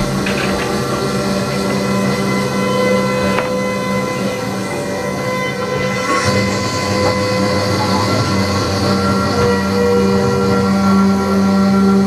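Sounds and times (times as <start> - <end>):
drone of held tones: 0.0 - 12.0
violin bowing: 0.0 - 12.0.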